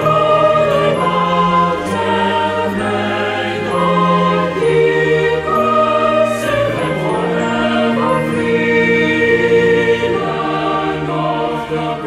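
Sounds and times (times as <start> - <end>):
choir singing a hymn: 0.0 - 12.0
orchestral accompaniment: 0.0 - 12.0.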